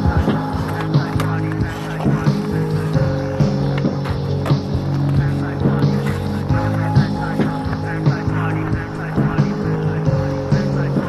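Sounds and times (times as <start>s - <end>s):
music with beat and bass: 0.0s - 11.0s.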